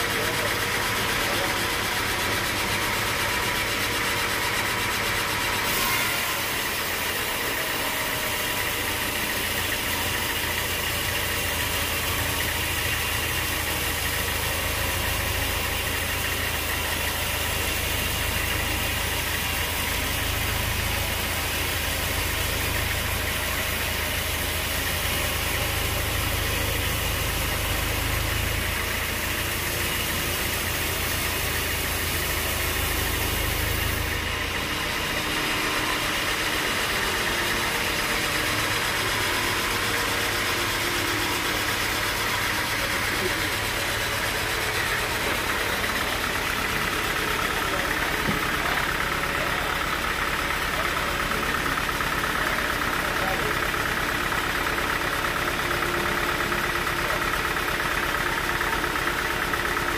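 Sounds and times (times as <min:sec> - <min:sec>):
band saw cutting log: 0:00.0 - 0:59.9.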